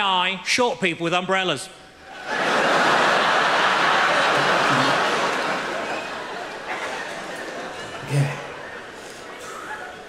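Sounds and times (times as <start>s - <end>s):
audience laughing: 2.1s - 10.0s
audience applauding: 2.9s - 9.4s.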